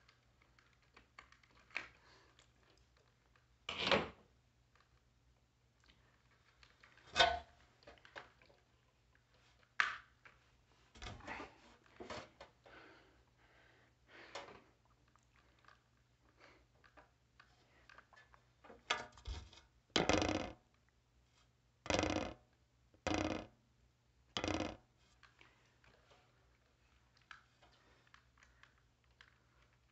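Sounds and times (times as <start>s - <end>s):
plastic smoke alarm clicking and creaking: 20.0s - 20.7s, 21.9s - 23.5s, 24.4s - 25.3s.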